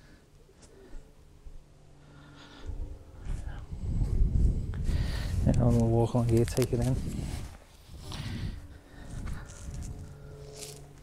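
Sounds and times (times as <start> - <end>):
faint steady hum: 0.0 - 11.0
wind rumbling on microphone: 2.6 - 11.0
footsteps on rough ground: 3.2 - 11.0.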